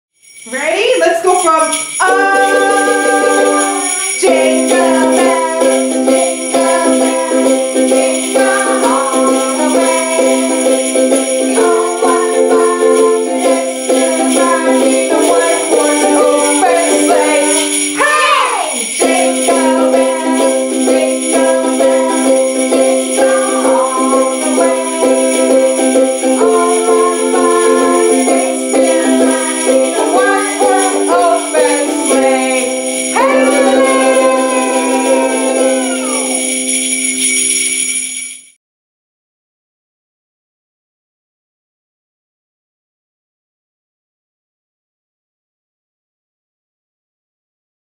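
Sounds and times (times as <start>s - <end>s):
jingle bells shaken: 0.2s - 38.6s
christmas music with sustained notes: 0.5s - 38.3s.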